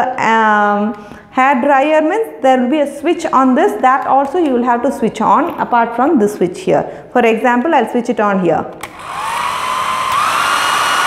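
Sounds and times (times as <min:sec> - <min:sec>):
hair dryer motor whine: 0:08.8 - 0:11.0.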